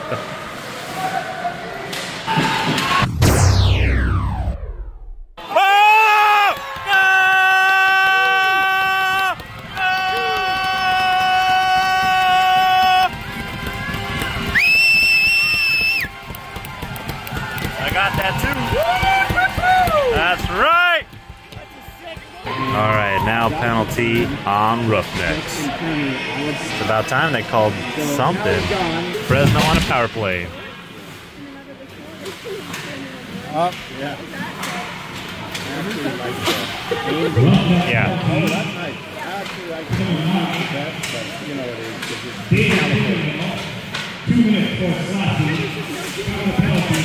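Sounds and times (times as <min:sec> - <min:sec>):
arena music and sound effects: 0:02.5 - 0:05.4.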